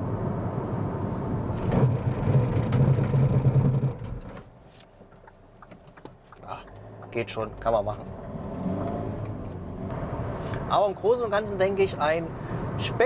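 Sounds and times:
road and engine rumble: 0.0s - 13.0s.

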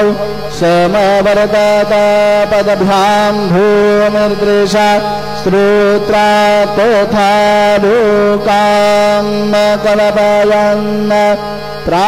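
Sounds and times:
steady drone: 0.0s - 12.0s.

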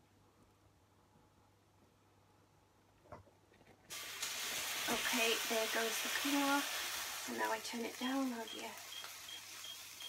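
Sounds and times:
water sizzling on hot hob: 3.9s - 10.0s.

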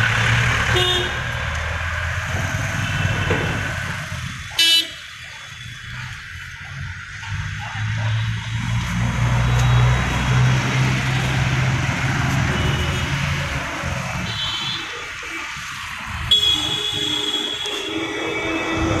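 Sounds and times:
street noise: 0.0s - 19.0s.

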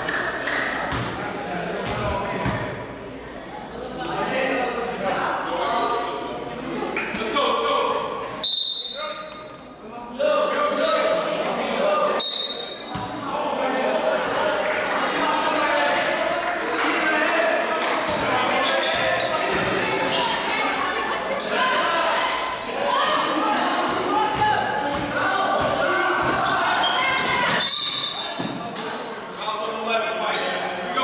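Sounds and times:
basketball bouncing on court floor: 0.9s - 1.2s
players and spectators calling out: 4.1s - 31.0s
referee's whistle: 8.4s - 9.4s, 12.2s - 12.9s, 27.6s - 28.4s.

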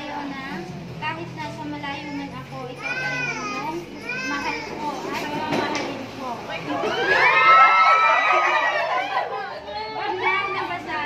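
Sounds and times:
women talking: 0.0s - 11.0s
women squealing and laughing: 6.8s - 10.5s.

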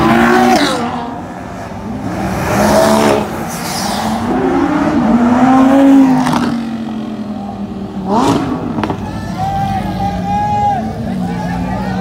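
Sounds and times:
sports car engines revving: 0.0s - 12.0s.

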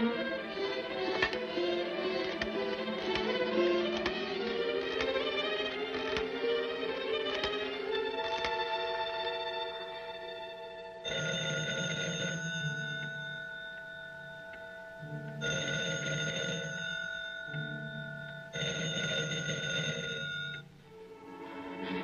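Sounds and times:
soft orchestral music: 0.0s - 11.8s, 12.4s - 18.6s, 20.6s - 22.0s
telephone bell ringing: 7.0s - 20.8s.

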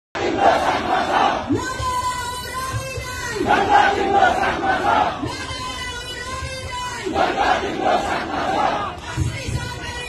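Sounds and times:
crowd shouting slogans: 0.2s - 2.3s, 3.0s - 9.9s.

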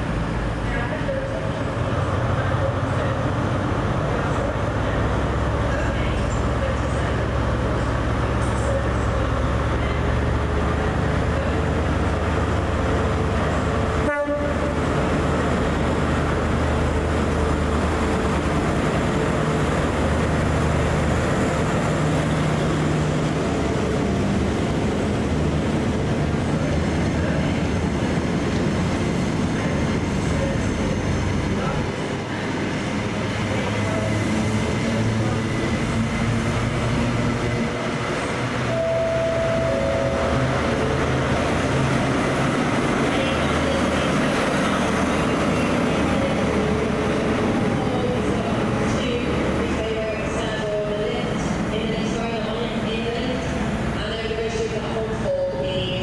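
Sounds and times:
coaches rumbling over track: 0.0s - 56.0s
diesel train engines: 0.0s - 56.0s.

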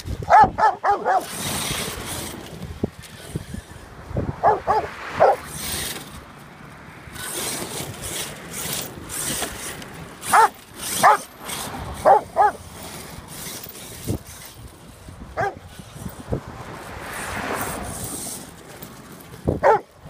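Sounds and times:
toy car motor whirring: 0.0s - 20.0s
tyres scrabbling on dirt: 0.0s - 20.0s
dog barking sharply: 0.3s - 1.3s, 4.4s - 5.4s, 10.3s - 11.2s.

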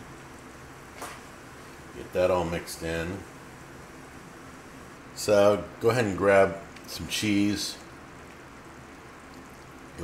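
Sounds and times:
faint hiss of saucepan on burner: 0.0s - 10.0s.

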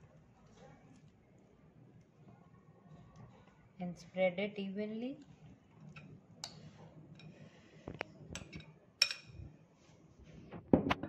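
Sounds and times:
spoon clicking on glass bowl: 8.4s - 9.4s.

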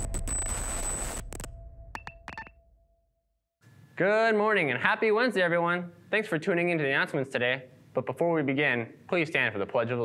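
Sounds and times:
electronic glitch blips: 0.0s - 2.6s
faint room hiss: 3.6s - 10.0s.

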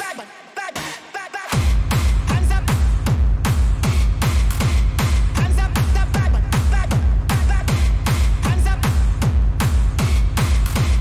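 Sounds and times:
fast four-on-the-floor kick drum: 1.6s - 11.0s.

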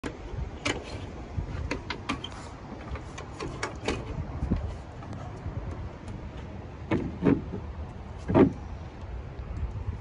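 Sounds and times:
dog claws scraping wooden boards: 6.1s - 8.7s.

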